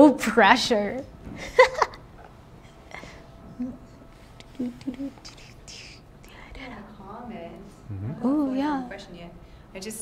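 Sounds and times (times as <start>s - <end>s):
quiet low talk: 4.6s - 9.0s
person whispering: 5.2s - 6.1s.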